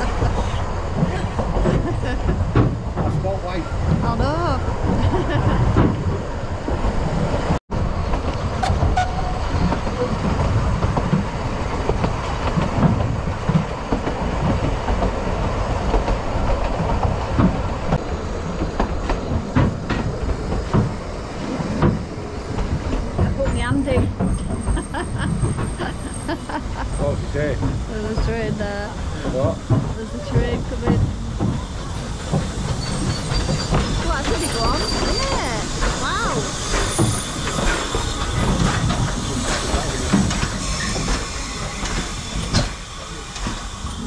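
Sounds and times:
railway carriage rumbling on rails: 0:00.0 - 0:44.0.

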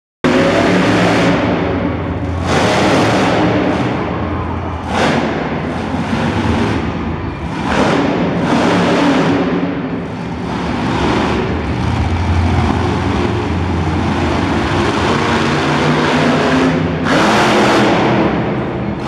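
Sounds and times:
truck engine revving: 0:00.2 - 0:19.0.

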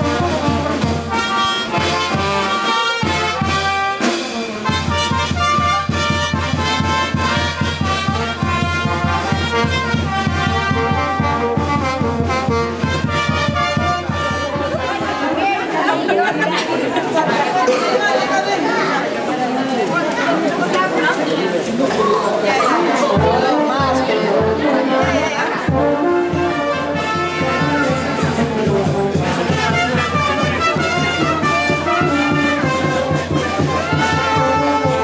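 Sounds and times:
brass band playing: 0:00.0 - 0:15.9, 0:22.8 - 0:35.0
crowd chatter: 0:00.0 - 0:35.0
bass drum beat: 0:04.7 - 0:15.2.

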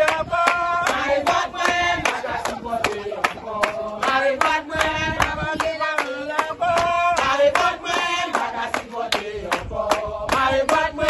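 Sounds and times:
group of people singing: 0:00.0 - 0:11.0
hands clapping: 0:00.0 - 0:11.0.

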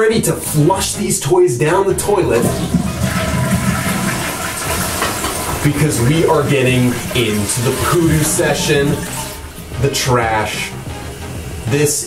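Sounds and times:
toilet flushing: 0:01.7 - 0:12.0.

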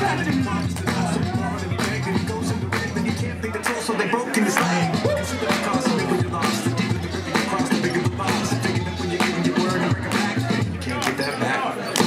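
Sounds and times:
hip hop beat over loudspeaker: 0:00.0 - 0:12.0
vocal line: 0:00.0 - 0:12.0.

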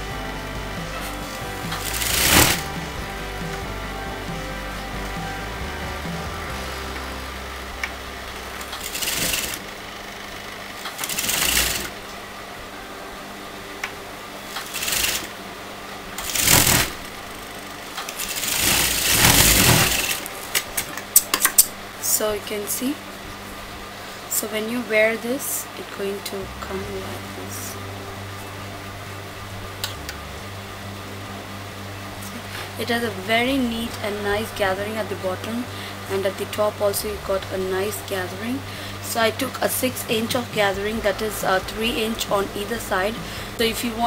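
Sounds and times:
background music: 0:00.0 - 0:09.7, 0:18.3 - 0:22.9, 0:26.0 - 0:44.0
sewing machine stitching: 0:01.0 - 0:03.0, 0:08.6 - 0:09.8, 0:10.8 - 0:12.0, 0:14.5 - 0:15.4, 0:16.2 - 0:20.3.

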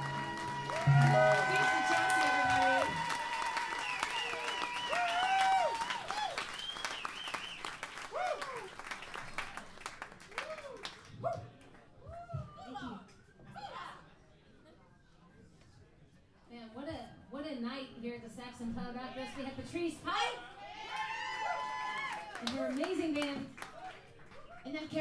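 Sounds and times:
live song held note: 0:00.0 - 0:04.6
audience clapping and cheering: 0:00.0 - 0:11.8, 0:20.8 - 0:24.7.

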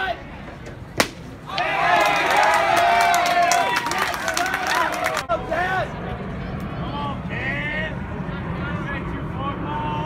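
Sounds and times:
baseball smacking into mitt: 0:00.9 - 0:01.4
spectators cheering and yelling: 0:01.4 - 0:05.9.

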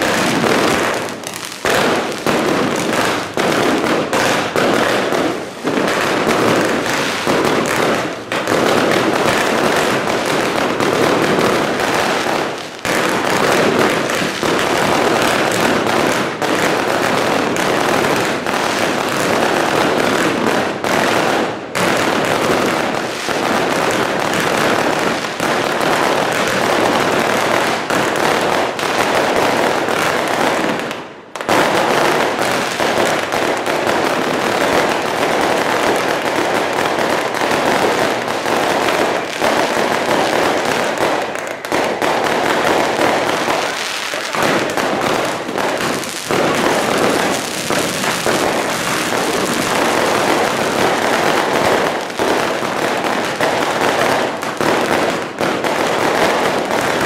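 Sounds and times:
rockets and firecrackers crackling: 0:00.0 - 0:57.0.

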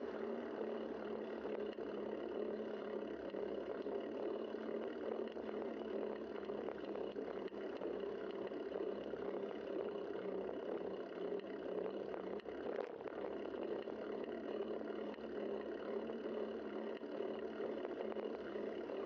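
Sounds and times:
bicycle road noise on pavement: 0:00.0 - 0:05.2, 0:05.8 - 0:18.9.

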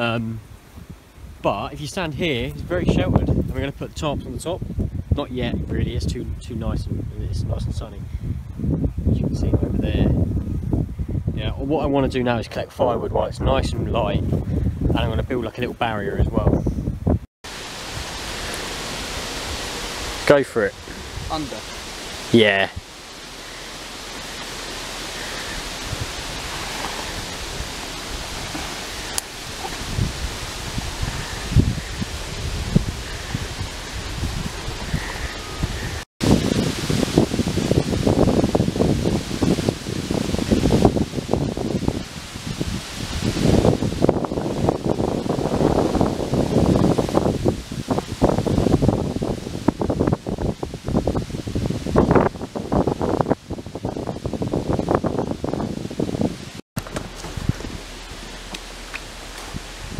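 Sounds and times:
wind buffeting microphone: 0:00.0 - 0:59.9
wind through foliage: 0:00.0 - 0:59.9
leaves rustling: 0:17.4 - 0:59.9.

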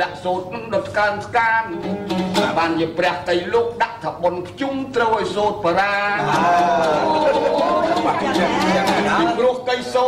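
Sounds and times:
people talking at once: 0:05.8 - 0:10.0.

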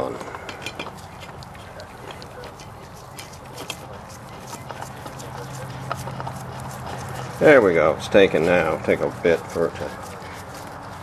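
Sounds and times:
oil filter clicking and rubbing: 0:00.0 - 0:11.0.

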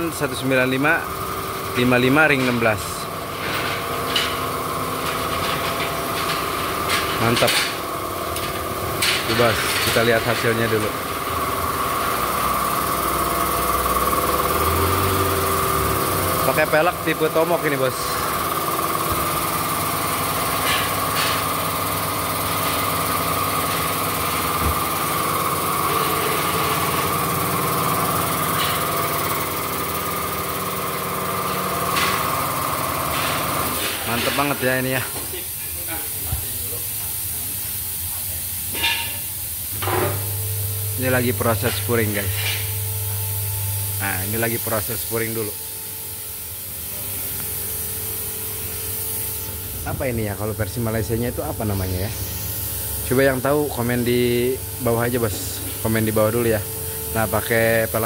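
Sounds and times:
high-pitched hum: 0:05.0 - 0:35.1, 0:39.8 - 0:58.0.

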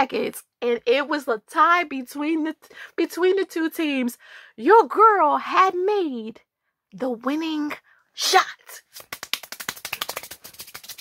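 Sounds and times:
rapid hand clapping: 0:08.9 - 0:11.0.

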